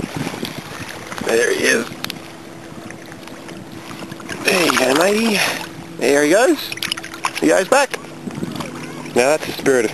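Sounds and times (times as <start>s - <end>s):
wind noise on microphone: 0.0s - 6.0s, 6.8s - 9.9s.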